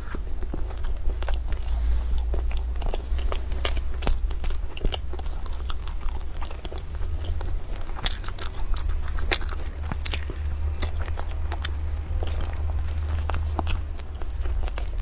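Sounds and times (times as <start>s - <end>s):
biting and chewing pastry: 0.0s - 15.0s
crisp crust crackles: 0.0s - 15.0s
low steady hum: 0.0s - 15.0s.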